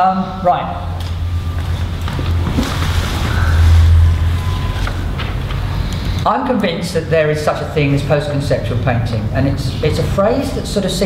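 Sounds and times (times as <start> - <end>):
low rumble: 1.1 - 6.0.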